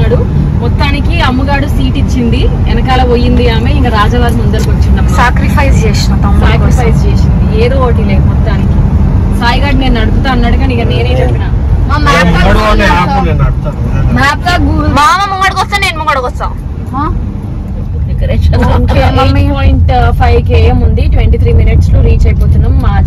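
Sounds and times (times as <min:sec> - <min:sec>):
people talking: 0:00.0 - 0:08.7, 0:09.4 - 0:17.2, 0:17.8 - 0:23.0
car cabin road and engine rumble: 0:00.0 - 0:23.0.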